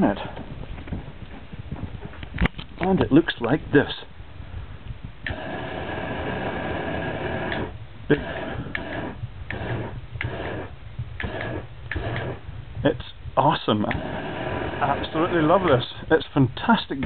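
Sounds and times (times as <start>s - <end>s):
short gas bursts: 5.2s - 13.2s, 13.9s - 16.1s
hissing gas jet: 5.3s - 12.4s, 13.9s - 16.0s.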